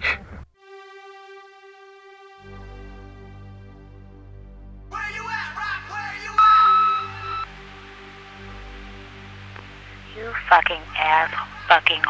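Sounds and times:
low synth drone: 1.3 - 5.0, 5.6 - 11.8
answering machine beep: 6.4 - 7.5
person speaking: 10.1 - 12.0.

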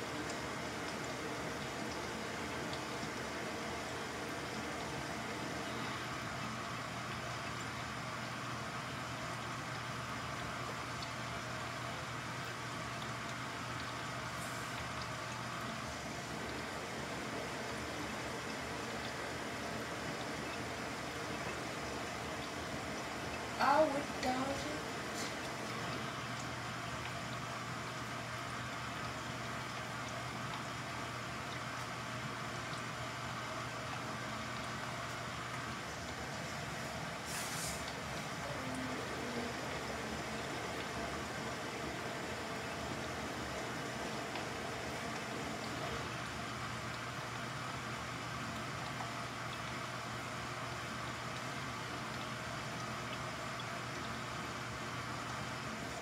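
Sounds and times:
washing machine motor hum: 0.0 - 56.0.

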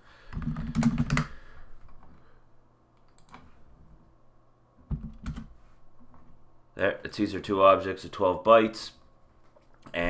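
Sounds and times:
keyboard typing: 0.3 - 1.3, 3.0 - 3.4, 4.9 - 5.5.

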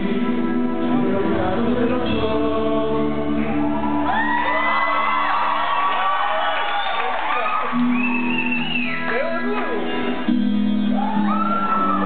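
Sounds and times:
voices singing: 0.0 - 4.2
live rock band playing: 7.4 - 12.0.

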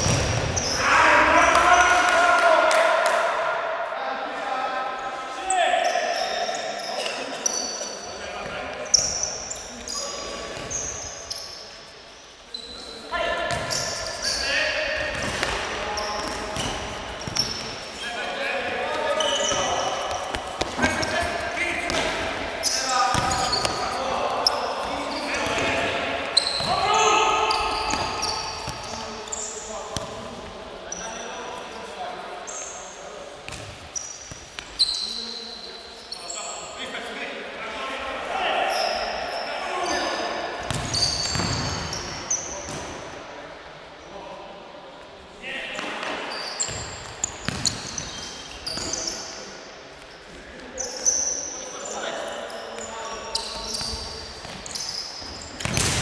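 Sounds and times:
players shouting: 18.9 - 28.4.

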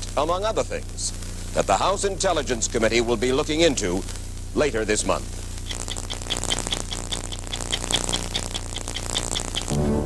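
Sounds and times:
steady low hum: 0.0 - 10.0
stopwatch ticking: 5.6 - 9.7.

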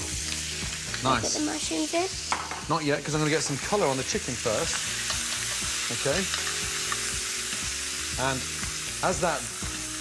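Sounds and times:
meat sizzling in oil in a pan: 0.0 - 10.0.

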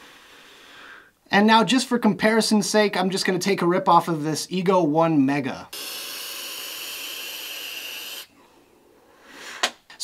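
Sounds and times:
airflow hissing through vape: 5.7 - 8.4.

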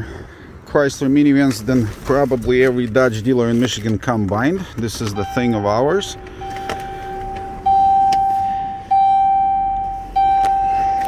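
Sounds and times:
dashboard warning chime: 5.0 - 11.0.

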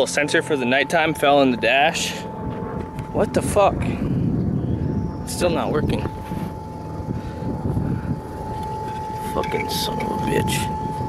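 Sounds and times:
thin steady whine: 0.0 - 11.0
vehicle engine drone: 0.0 - 11.0.

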